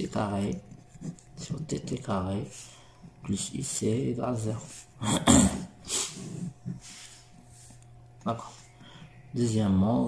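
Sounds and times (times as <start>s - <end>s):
man coughing: 5.0s - 5.8s.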